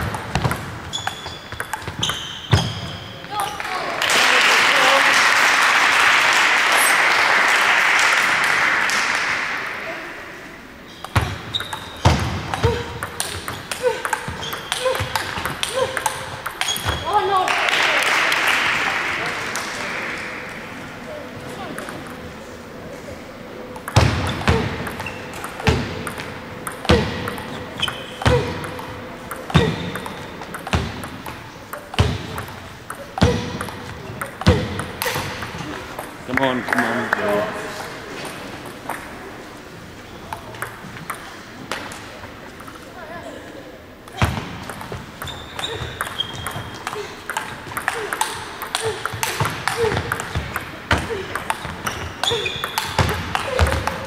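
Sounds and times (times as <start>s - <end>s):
table tennis ball hits: 0.0s - 3.8s, 11.0s - 20.6s, 23.7s - 39.2s, 40.3s - 42.8s, 44.1s - 54.0s
spectators applauding: 3.6s - 9.9s, 17.3s - 20.6s, 36.3s - 37.6s.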